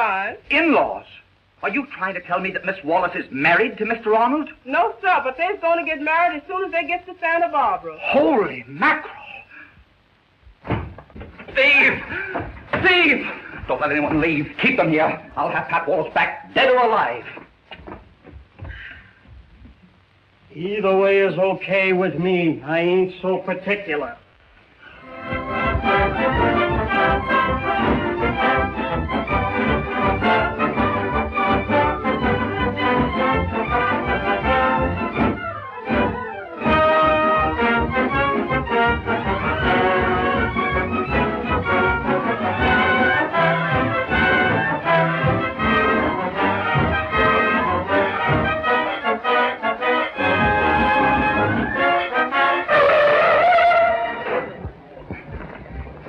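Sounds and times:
orchestral film music: 25.0 - 54.5.

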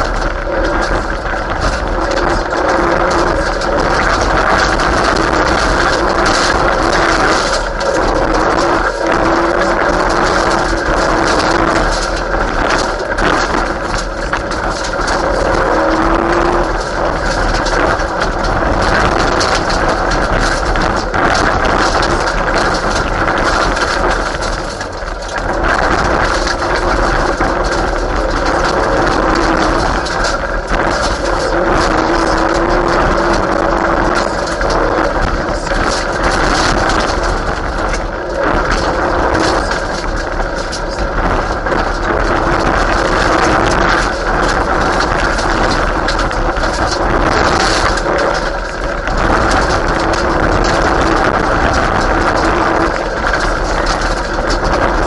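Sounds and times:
rally car engine revving: 0.0 - 55.0
road and gravel noise: 0.0 - 55.0.

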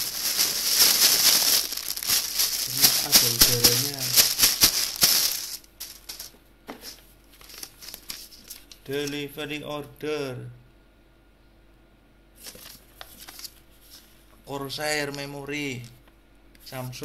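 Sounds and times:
plastic bag crinkling: 0.0 - 8.8.

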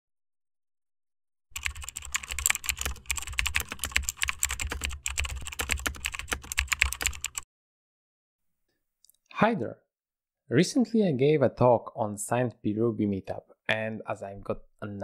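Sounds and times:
fast typing on keyboard: 1.6 - 7.4.

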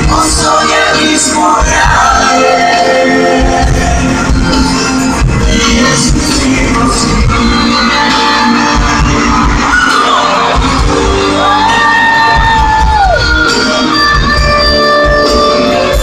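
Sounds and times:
man singing: 0.0 - 4.4, 5.1 - 10.8
live pop band: 0.0 - 16.0
crowd shouting: 8.5 - 13.5.

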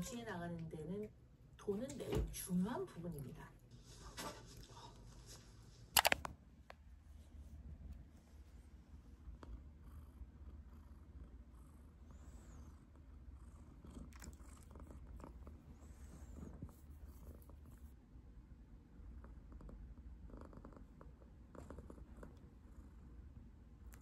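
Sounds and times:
cat purring: 8.5 - 18.0, 18.8 - 24.0.

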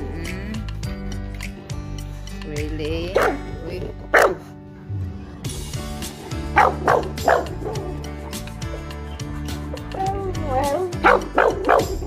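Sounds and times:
background music: 0.0 - 12.0
dog barking: 3.2 - 3.4, 4.1 - 4.5, 6.5 - 7.9, 11.0 - 12.0.

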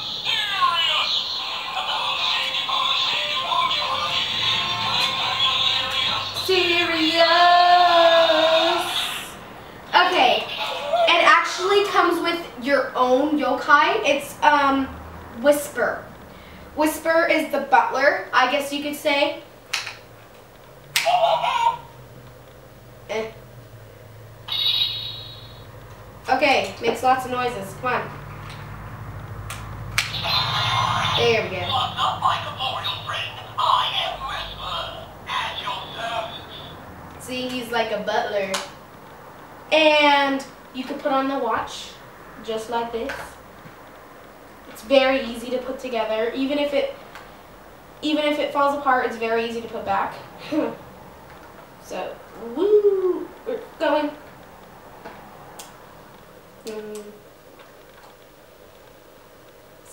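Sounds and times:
electronic toy music: 0.0 - 6.5, 24.5 - 25.7, 30.1 - 33.6, 34.3 - 36.8
synthetic singing: 0.0 - 9.3
high electronic wavering tone: 24.5 - 25.8.

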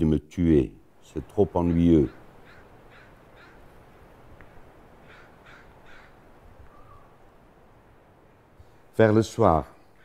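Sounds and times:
crows cawing: 1.5 - 3.9, 4.9 - 7.3, 9.8 - 10.0.

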